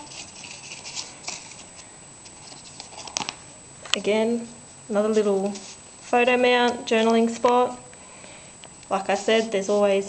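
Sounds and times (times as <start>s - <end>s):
paper rustling: 0.0s - 3.5s, 5.1s - 5.8s.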